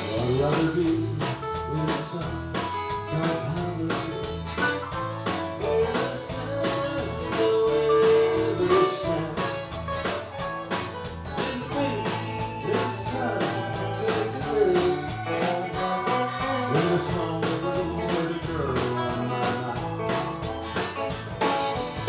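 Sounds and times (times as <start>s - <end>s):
drum kit beat: 0.0s - 22.0s
guitars: 0.0s - 22.0s.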